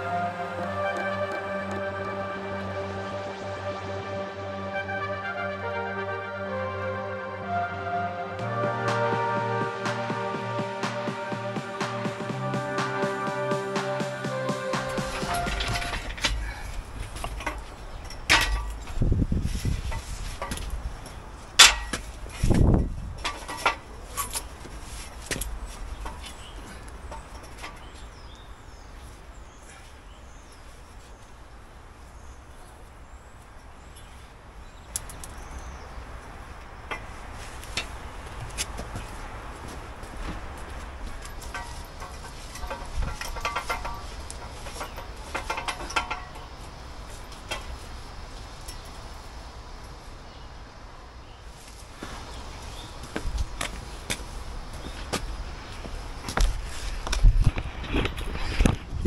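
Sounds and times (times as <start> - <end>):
low rumbles: 6.5 - 28.8
metal knocks and clanks: 14.5 - 19.2, 21.6 - 22.6, 41.0 - 47.9.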